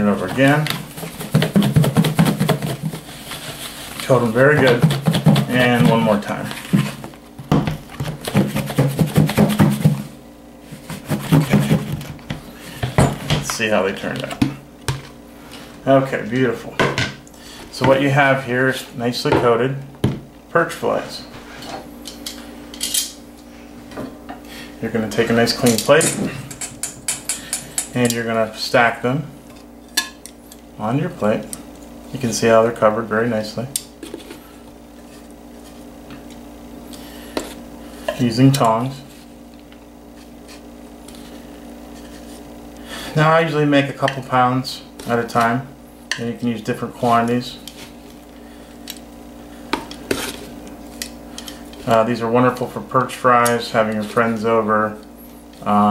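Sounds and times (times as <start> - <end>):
steady low hum: 0.0 - 55.9
food shaken in plastic bowl: 0.8 - 5.9.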